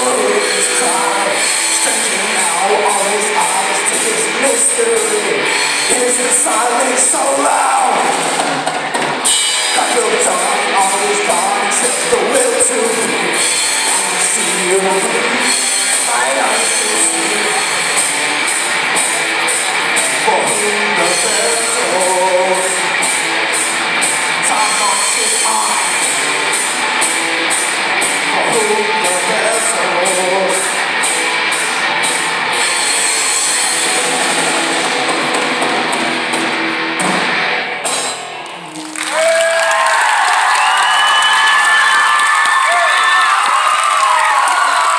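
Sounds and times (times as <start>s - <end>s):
live rock band playing: 0.0s - 44.9s
audience cheering and shouting: 38.5s - 44.9s.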